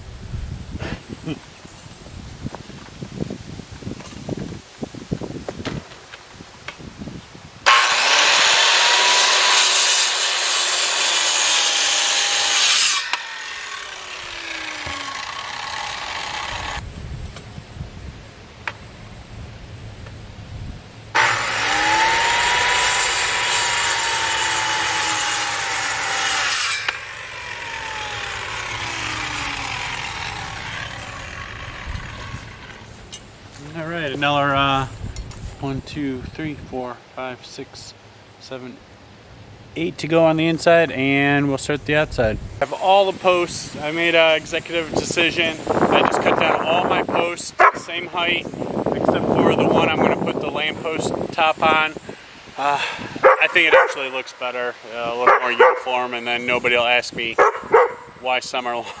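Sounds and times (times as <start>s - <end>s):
circular saw cutting wood: 7.6s - 16.8s, 21.1s - 34.3s, 42.6s - 52.0s, 52.6s - 58.0s.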